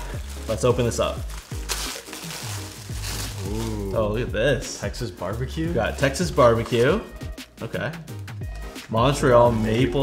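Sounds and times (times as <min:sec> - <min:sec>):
tissue paper rustling: 0:00.0 - 0:04.1
background music: 0:00.0 - 0:10.0.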